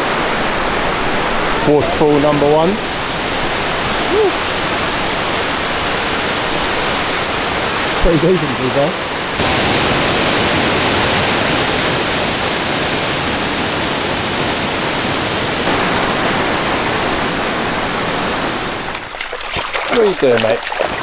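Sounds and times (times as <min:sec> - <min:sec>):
waterfall rushing: 0:00.0 - 0:21.0.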